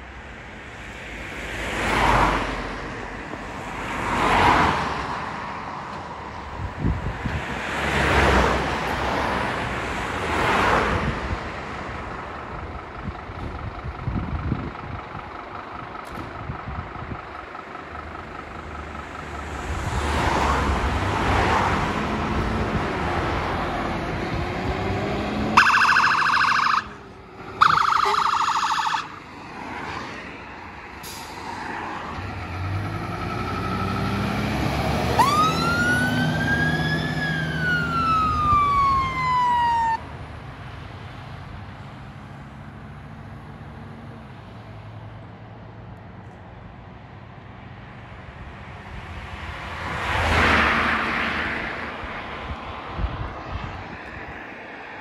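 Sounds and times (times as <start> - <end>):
road traffic passing: 0.0 - 55.0
diesel engine pulling out: 6.6 - 44.4
siren wail rising: 25.0 - 29.9, 31.6 - 40.0
warbling phaser siren: 25.6 - 27.0, 27.6 - 29.2, 35.2 - 40.0.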